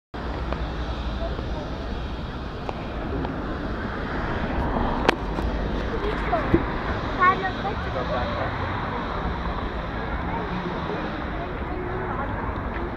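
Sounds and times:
low street rumble: 0.2s - 12.9s
indistinct voices: 0.3s - 12.9s.

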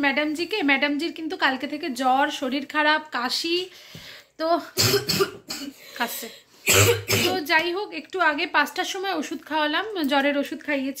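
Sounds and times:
person coughing: 4.8s - 5.8s, 6.6s - 7.5s.

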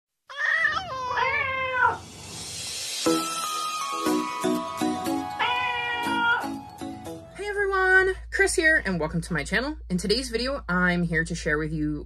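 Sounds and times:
cat meowing: 0.3s - 2.0s, 5.4s - 6.5s.

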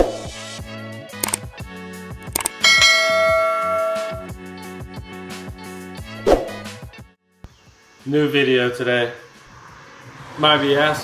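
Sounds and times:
sharp click: 1.2s - 1.4s, 2.2s - 2.6s
bell ding: 2.5s - 4.3s.

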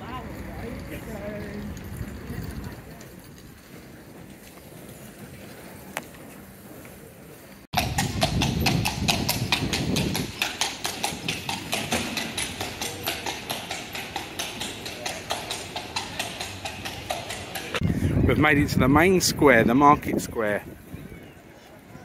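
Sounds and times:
horse hooves on cobblestones: 0.0s - 17.8s.

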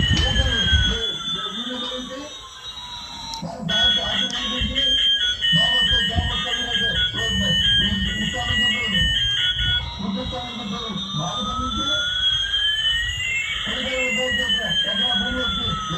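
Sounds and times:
synthetic jet engine whine: 0.0s - 15.9s
tinny tune of high beeps: 0.0s - 15.9s.

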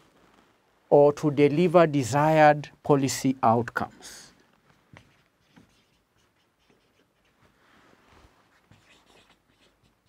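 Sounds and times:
marker scratching on whiteboard: 4.8s - 7.6s, 8.5s - 10.0s.

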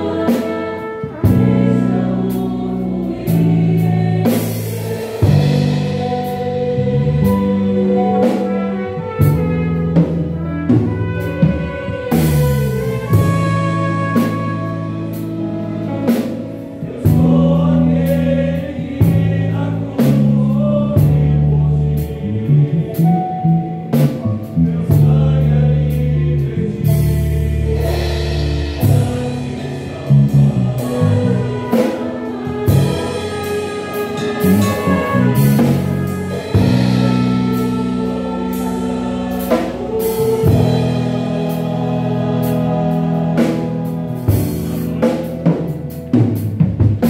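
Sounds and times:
choir singing: 0.0s - 46.2s
drum kit: 0.0s - 47.0s
electric bass low notes: 0.0s - 47.0s.

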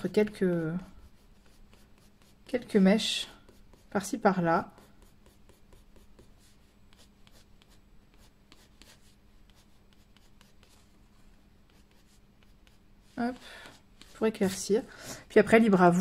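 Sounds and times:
colored pencil scratching paper: 0.0s - 14.9s.

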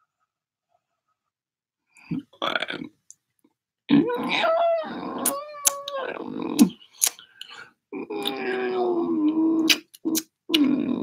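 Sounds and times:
man's high-pitched vocalising: 3.9s - 7.1s, 8.0s - 11.0s.

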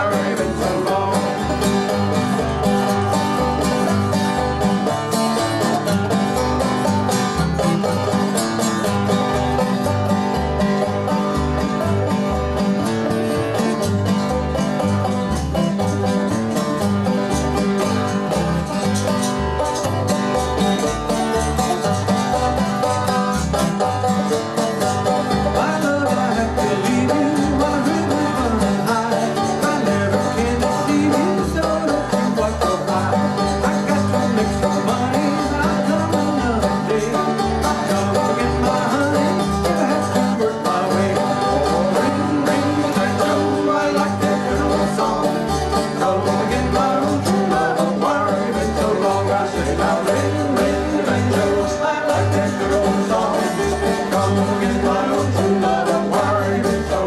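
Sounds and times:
acoustic guitar: 0.0s - 57.0s
banjo: 0.0s - 57.0s
plucked upright bass: 0.0s - 57.0s.

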